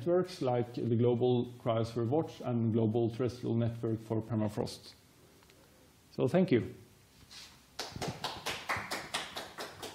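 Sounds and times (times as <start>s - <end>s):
audience applause: 7.8s - 9.9s.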